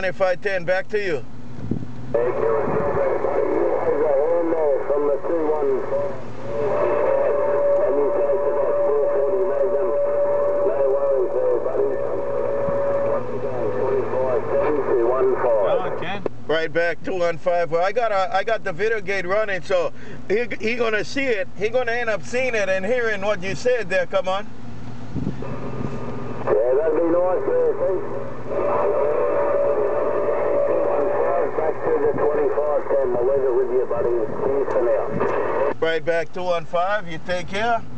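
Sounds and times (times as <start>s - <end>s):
radio band noise: 2.1s - 24.5s, 25.4s - 37.9s
garbled voice through radio speaker: 2.2s - 16.2s, 26.5s - 37.8s.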